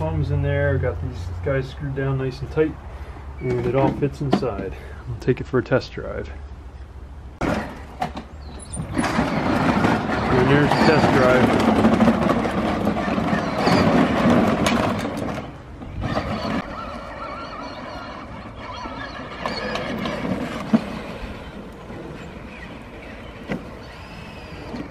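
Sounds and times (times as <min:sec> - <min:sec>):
electric motors whining: 0:07.5 - 0:24.9.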